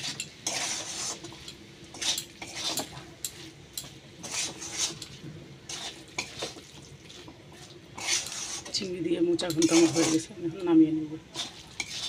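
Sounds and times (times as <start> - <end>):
metal spatula scraping a metal pan: 0.0 - 6.6, 7.9 - 10.6, 11.2 - 12.0.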